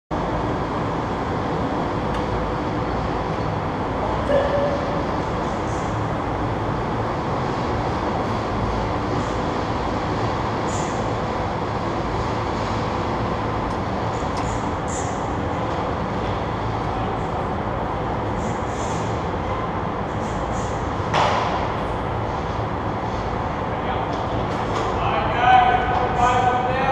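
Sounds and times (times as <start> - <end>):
low rumbling hall hum: 0.1 - 26.9.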